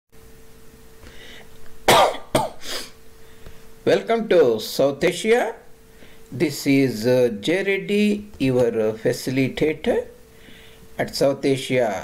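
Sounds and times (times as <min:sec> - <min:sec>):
faint steady hum: 0:00.2 - 0:12.0
man coughing: 0:01.9 - 0:03.0.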